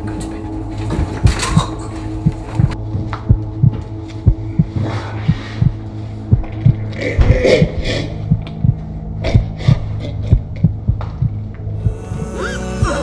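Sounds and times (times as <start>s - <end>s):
low drone: 0.0s - 13.0s
low heartbeat-like thumps: 1.0s - 13.0s.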